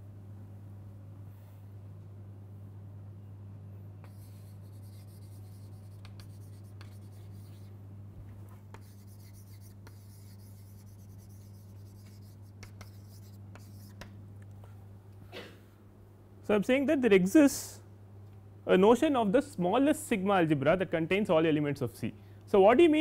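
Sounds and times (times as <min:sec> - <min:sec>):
low steady hum: 0:00.0 - 0:23.0
chalk scratching on blackboard: 0:04.0 - 0:07.7, 0:08.7 - 0:14.1
chalk tapping on board: 0:04.0 - 0:07.7, 0:08.7 - 0:14.2.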